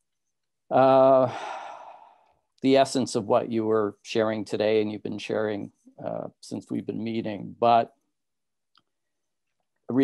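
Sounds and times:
man speaking: 0:00.7 - 0:01.4, 0:02.6 - 0:08.0.

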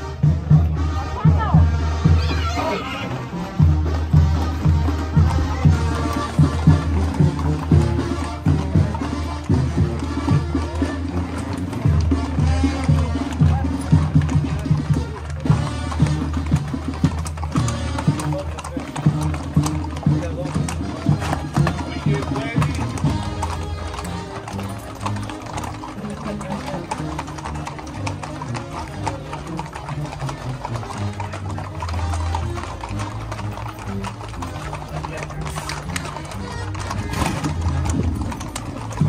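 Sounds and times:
horses' hooves on pavement: 0:00.0 - 0:39.0.

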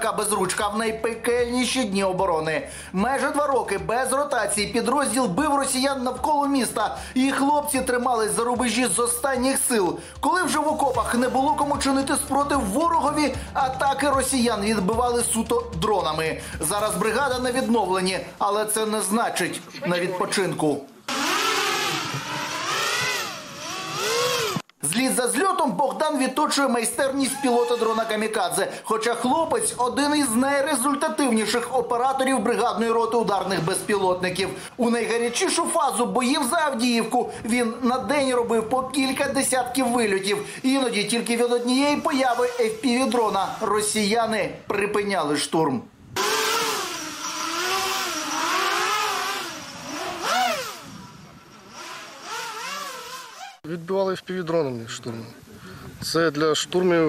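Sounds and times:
quadcopter motors whining: 0:21.1 - 0:24.7, 0:41.6 - 0:43.6, 0:46.2 - 0:53.6.

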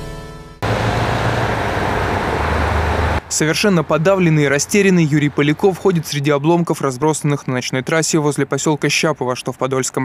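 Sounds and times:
idling vehicle engines hum: 0:00.6 - 0:03.3.

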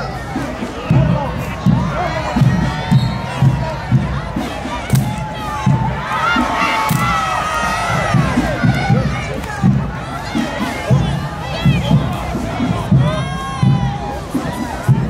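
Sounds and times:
crowd cheering and shouting: 0:00.0 - 0:15.0
marching band drum beat: 0:00.0 - 0:15.0.

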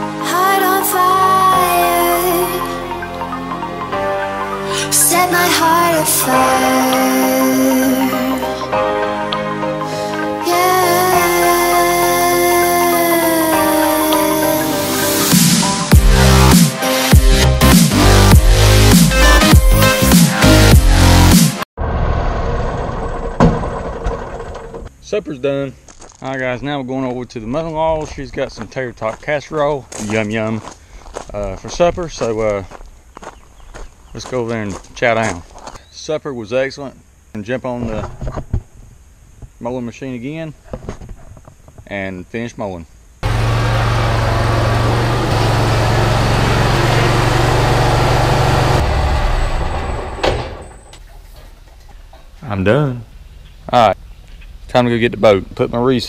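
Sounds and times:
riding lawn mower engine running: 0:22.4 - 0:24.9, 0:43.2 - 0:52.4
clunk: 0:23.3 - 0:24.9, 0:49.4 - 0:52.4.

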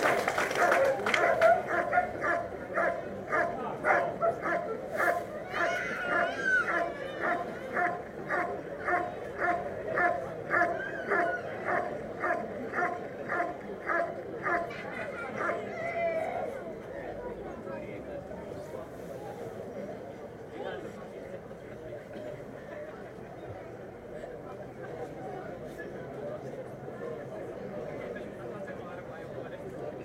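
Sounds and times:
dog barking: 0:01.2 - 0:04.7.

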